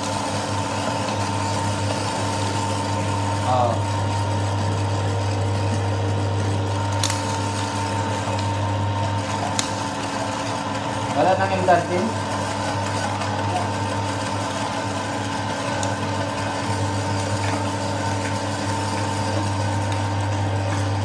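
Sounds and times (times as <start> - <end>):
electric meat mincer running: 0.0 - 21.0.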